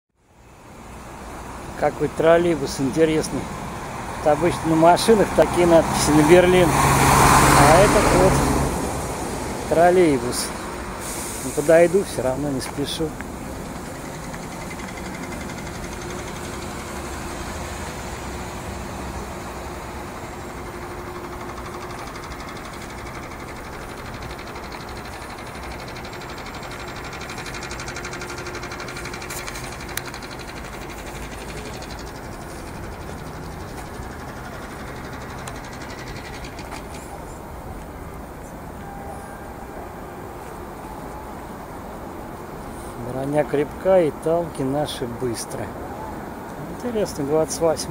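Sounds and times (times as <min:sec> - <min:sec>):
traffic: 0:00.1 - 0:47.9
wind: 0:00.1 - 0:47.9.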